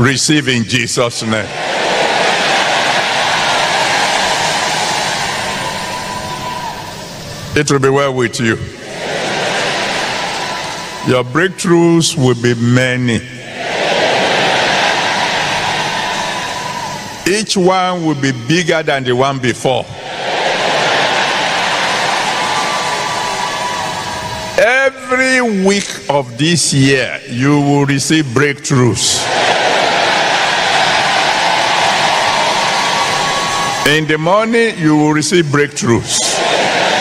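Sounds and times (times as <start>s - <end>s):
preacher speaking: 0.0s - 1.6s, 7.5s - 8.8s, 11.0s - 13.5s, 17.2s - 20.0s, 24.6s - 29.3s, 33.8s - 36.4s
congregation shouting: 1.2s - 7.6s, 8.4s - 11.9s, 13.3s - 18.8s, 19.9s - 25.6s, 29.2s - 37.0s.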